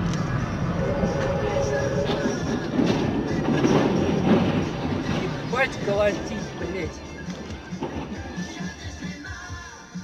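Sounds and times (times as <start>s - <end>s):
trailer scraping along barrier: 0.0s - 8.8s.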